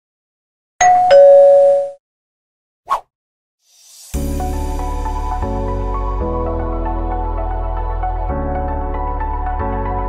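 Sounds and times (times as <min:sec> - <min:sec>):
two-note ding-dong chime: 0:00.8 - 0:02.0.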